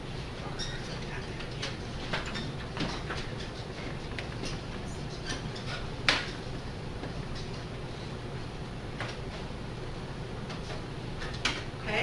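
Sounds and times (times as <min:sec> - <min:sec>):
low room hum: 0:00.0 - 0:12.0
marker squeaking on paper: 0:03.2 - 0:04.0.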